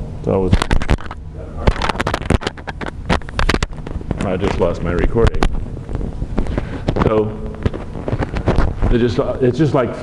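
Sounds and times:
microphone handling knocks and rustles: 0.5 - 9.2
low rumble: 3.6 - 9.1.

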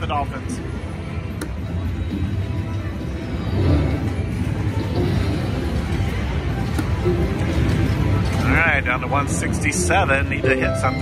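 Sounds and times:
slot machine music and sounds: 2.6 - 11.0.

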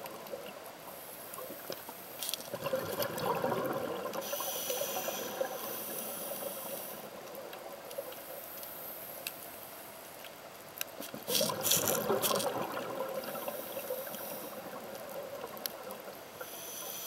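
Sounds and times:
exhaust bubbles gushing: 2.5 - 4.2, 11.2 - 16.3
regulator hiss: 4.2 - 7.2, 13.3 - 14.7, 16.3 - 17.0.

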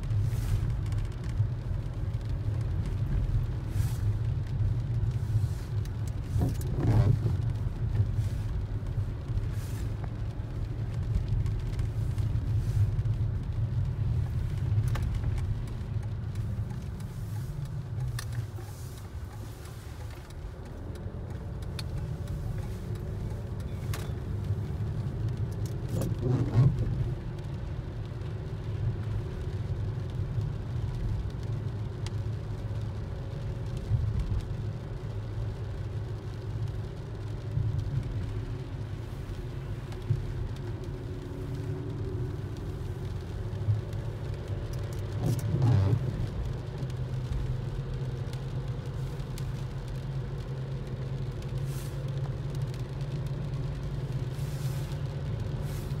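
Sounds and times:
car interior rumble: 0.0 - 56.0.

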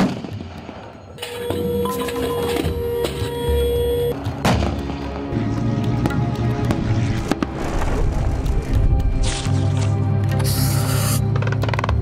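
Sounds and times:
background music sustained tones: 1.1 - 12.0.

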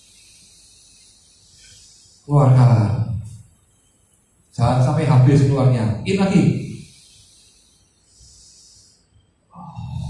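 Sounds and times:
people breathing in together: 0.0 - 2.3, 6.7 - 9.7.

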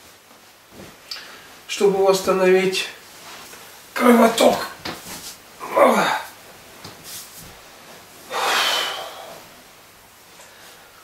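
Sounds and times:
man exhaling loudly: 8.3 - 9.5.

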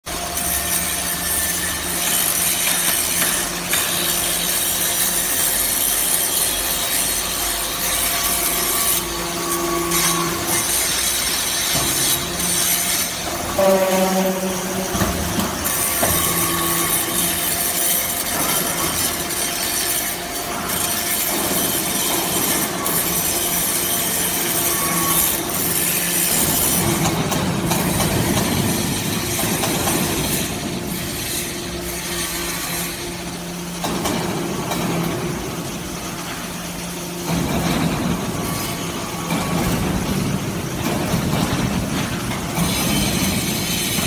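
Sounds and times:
machinery hum: 0.1 - 44.0
machine squeal: 4.6 - 20.0, 20.7 - 27.0.

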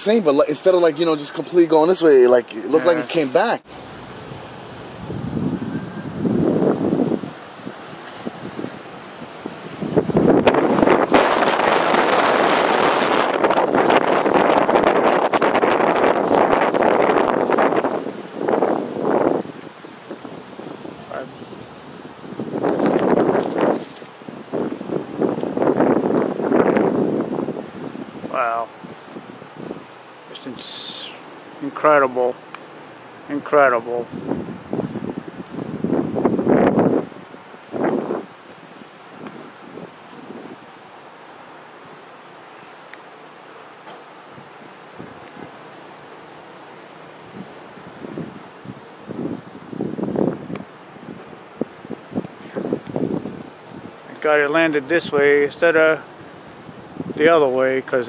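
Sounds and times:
wind buffeting microphone: 3.4 - 31.0, 31.6 - 42.0, 43.9 - 58.0.

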